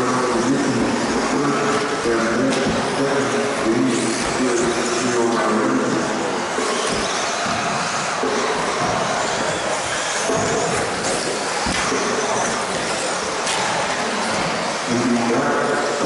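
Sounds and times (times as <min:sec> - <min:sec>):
rc car motors and tyres: 0:03.2 - 0:05.2, 0:06.0 - 0:14.8.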